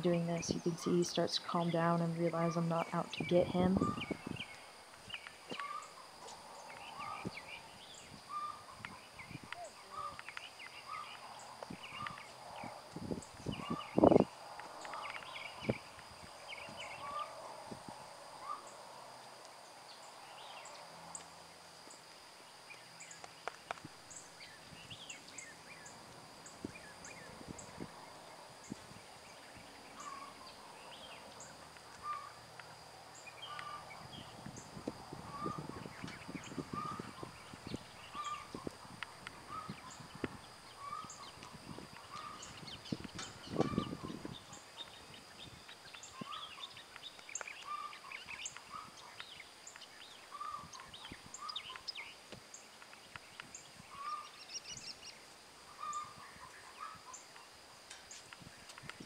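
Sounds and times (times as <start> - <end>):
birds chirping and calling: 0.0 - 17.4, 22.7 - 32.4, 33.1 - 59.0
high insect drone: 0.0 - 59.0.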